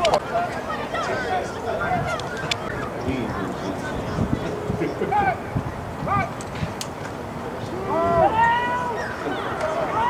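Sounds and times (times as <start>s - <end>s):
crowd noise: 0.0s - 10.0s
people shouting: 5.0s - 6.4s, 7.7s - 10.0s.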